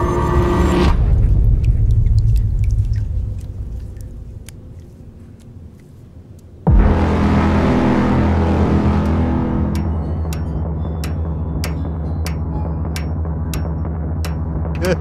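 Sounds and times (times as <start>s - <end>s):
deep low drone: 0.0s - 4.9s, 6.7s - 15.0s
heavy impact: 6.7s - 11.3s
sharp ticks: 9.0s - 14.9s.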